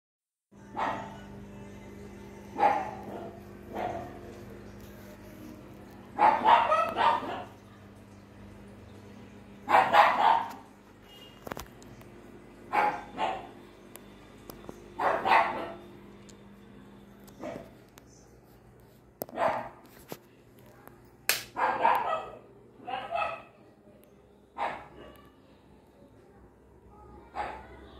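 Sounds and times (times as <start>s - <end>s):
dog barking: 0.7s - 1.2s, 2.6s - 4.3s, 6.2s - 7.6s, 9.6s - 10.7s, 12.7s - 13.6s, 15.0s - 15.9s, 17.4s - 17.8s, 19.3s - 19.8s, 21.6s - 23.6s, 24.6s - 25.4s, 27.2s - 27.8s
sharp crack: 21.3s - 21.6s.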